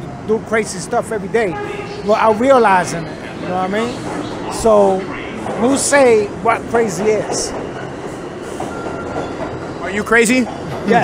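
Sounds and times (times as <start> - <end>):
subway train noise: 0.0 - 11.0.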